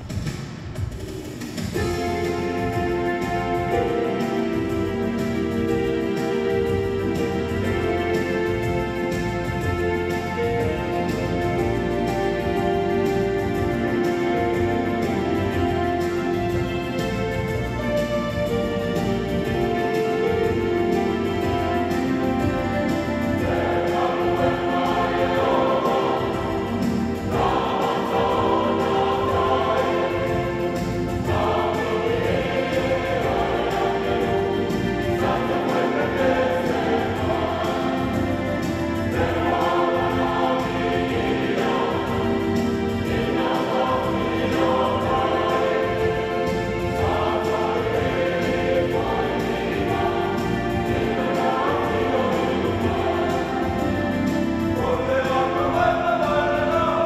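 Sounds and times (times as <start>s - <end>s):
choir singing a hymn: 1.6s - 57.0s.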